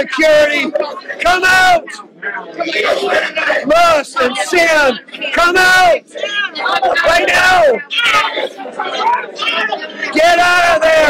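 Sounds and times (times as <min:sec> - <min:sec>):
loud voice: 0:00.0 - 0:02.1, 0:02.7 - 0:11.0
overlapping chatter: 0:00.0 - 0:11.0.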